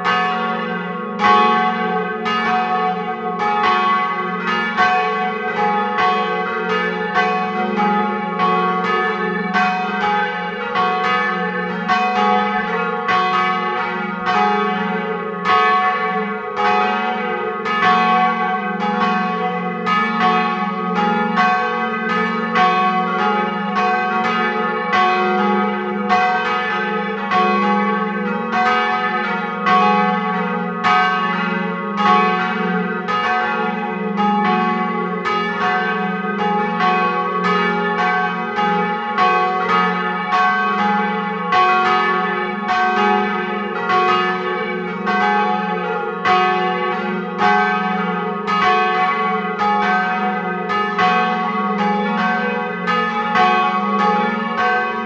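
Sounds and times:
church bells ringing: 0:00.0 - 0:55.0.

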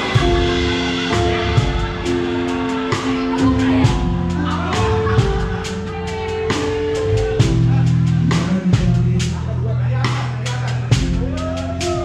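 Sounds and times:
drum and cymbal strokes: 0:00.0 - 0:12.0
live band music: 0:00.0 - 0:12.0
sustained bass notes: 0:00.0 - 0:12.0.

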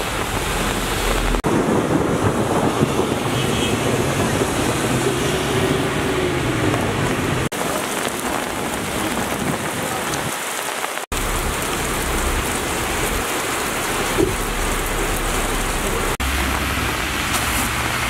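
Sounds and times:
heavy rain on street: 0:00.0 - 0:18.0.

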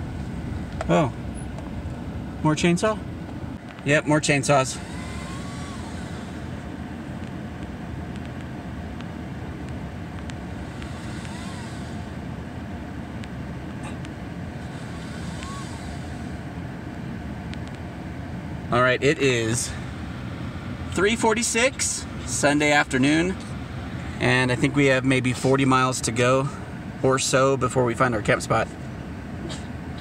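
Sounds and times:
pickup truck idling: 0:00.0 - 0:30.0.

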